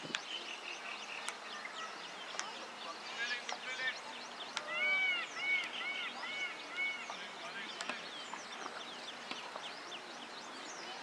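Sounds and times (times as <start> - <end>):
birds chirping: 0.0 - 11.0
loud repeated bird call: 0.4 - 8.2.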